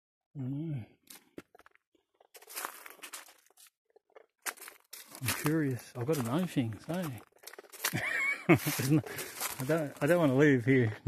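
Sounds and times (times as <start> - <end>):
footsteps crunching dry leaves: 2.4 - 3.7, 4.4 - 10.7.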